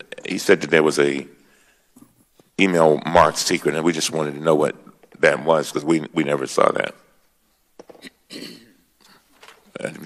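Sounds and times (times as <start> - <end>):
man speaking: 0.0 - 1.4, 2.6 - 7.2, 9.7 - 10.0
man clearing throat: 8.0 - 8.8.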